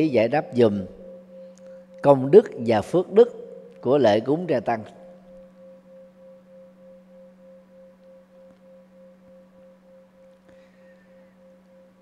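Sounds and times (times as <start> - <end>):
two-tone pulsing hum: 0.0 - 12.0.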